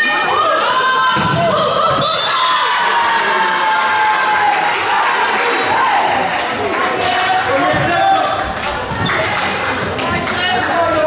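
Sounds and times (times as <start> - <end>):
people shouting and calling: 0.0 - 9.1.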